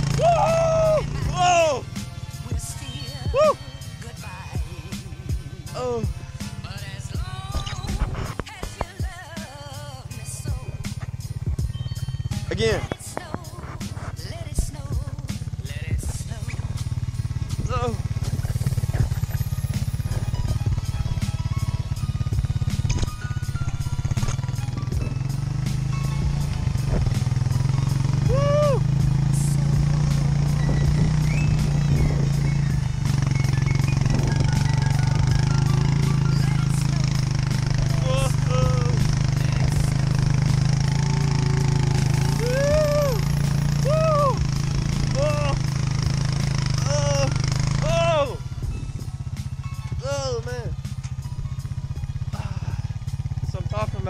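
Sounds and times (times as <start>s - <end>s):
four-wheeler engine running: 0.0s - 54.0s
person yelling: 0.1s - 1.9s, 3.2s - 3.7s, 28.2s - 29.0s, 38.0s - 39.0s, 42.3s - 44.5s, 45.1s - 45.6s, 46.8s - 48.4s.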